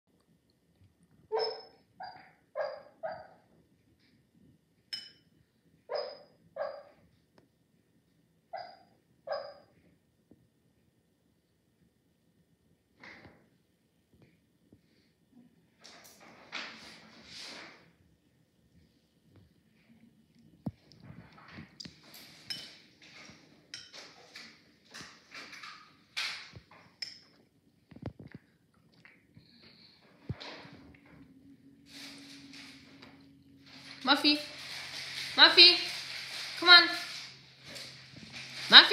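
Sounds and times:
dog barking quietly in sleep: 0:01.3 - 0:03.6.

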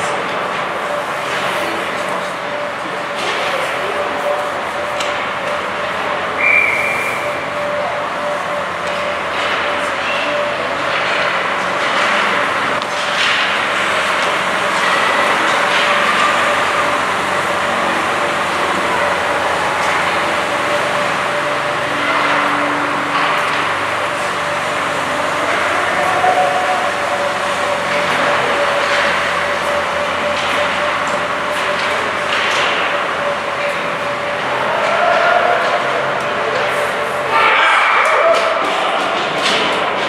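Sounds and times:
steady hum: 0:00.0 - 0:37.3
sticks and puck clacking: 0:00.0 - 0:40.0.

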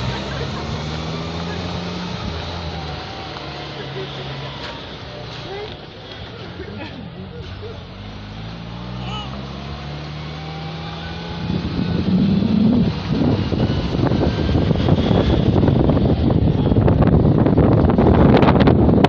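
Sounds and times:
rushing wind and road noise: 0:00.0 - 0:19.0
vehicle engine revving: 0:00.0 - 0:19.0.

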